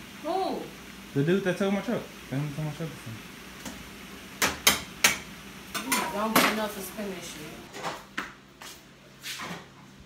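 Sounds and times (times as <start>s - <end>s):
pots and utensils clattering: 4.4s - 6.7s.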